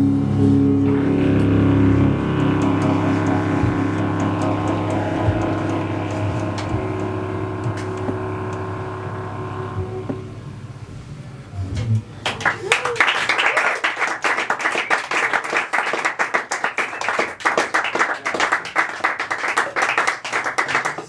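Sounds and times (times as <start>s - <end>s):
band holding a chord: 0.0s - 11.1s.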